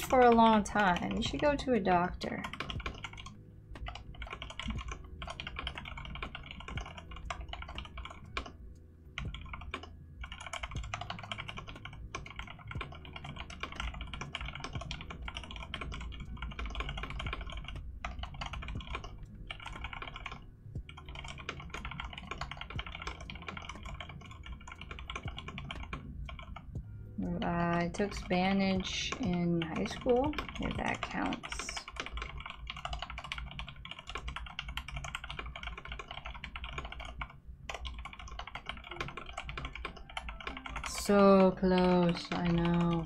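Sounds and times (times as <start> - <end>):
typing on mechanical keyboard: 0.0 - 8.6, 9.2 - 26.7, 27.4 - 43.0.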